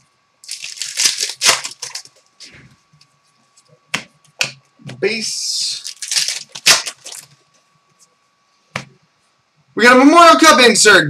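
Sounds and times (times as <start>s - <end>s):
foil wrapper crinkling and tearing: 0.4s - 2.1s, 5.7s - 7.3s
cards rustling: 0.4s - 2.2s, 5.6s - 7.4s.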